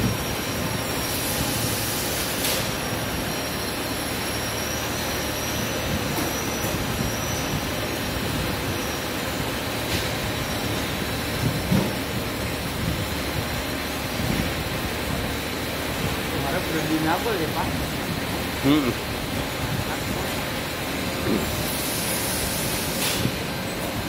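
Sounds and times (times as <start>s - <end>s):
electric motor and pump running: 0.0s - 24.0s.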